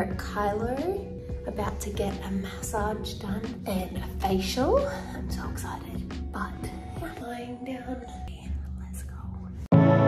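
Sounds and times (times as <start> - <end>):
calm music with held tones: 4.2 - 10.0
person whispering: 8.3 - 9.7.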